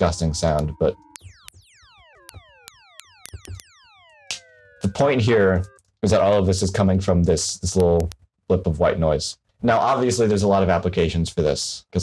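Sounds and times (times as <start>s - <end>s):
synthesized pings gliding down: 0.0s - 6.8s.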